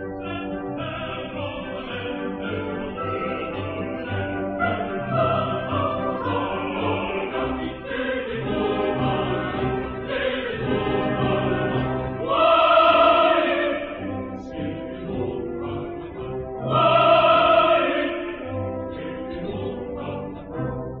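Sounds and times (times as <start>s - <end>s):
opera chorus singing: 0.0s - 21.0s
orchestra playing: 0.0s - 21.0s.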